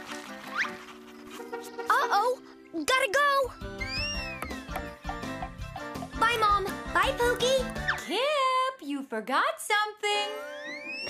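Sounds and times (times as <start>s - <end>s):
light cartoon music: 0.0s - 8.6s, 9.9s - 11.0s
rising and falling whistle effect: 3.8s - 4.7s, 10.4s - 11.0s.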